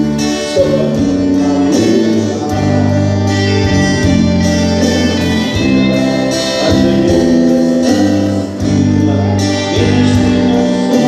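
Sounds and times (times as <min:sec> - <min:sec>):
guitars playing held chords: 0:00.0 - 0:11.0
low bass: 0:00.0 - 0:11.0.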